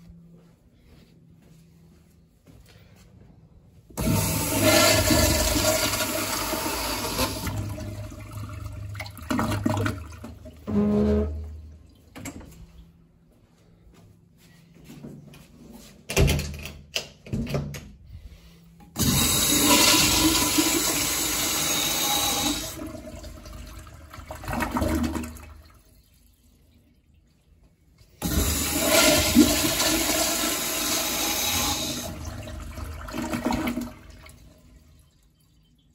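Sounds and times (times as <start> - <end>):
toilet flushing: 4.0 - 12.4, 18.9 - 35.9.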